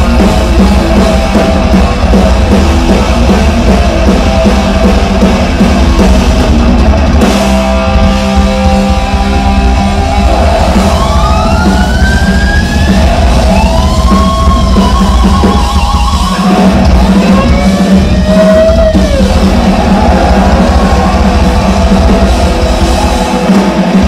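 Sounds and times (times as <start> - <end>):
bending lead guitar notes: 0.0 - 24.0
metal band playing live: 0.0 - 24.0.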